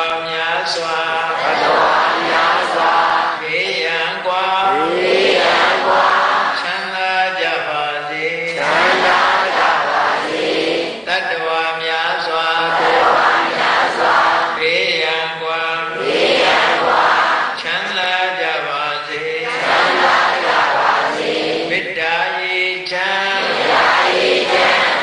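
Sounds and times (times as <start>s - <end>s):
chanting recitation: 0.0s - 25.0s.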